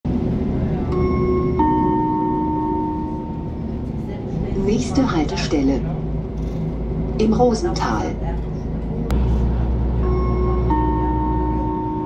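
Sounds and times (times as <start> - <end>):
bus rumble: 0.0 - 12.0
two-note bus chime: 0.8 - 3.7, 10.0 - 12.0.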